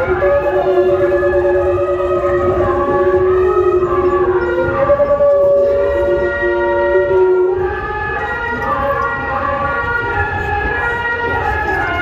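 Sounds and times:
wind instruments playing: 0.0 - 12.0.

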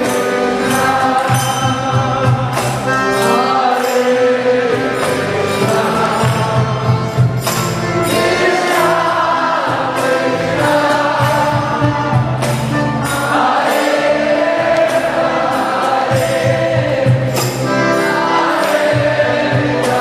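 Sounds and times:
group singing a chant: 0.0 - 20.0
sharp percussion strikes: 0.0 - 20.0.

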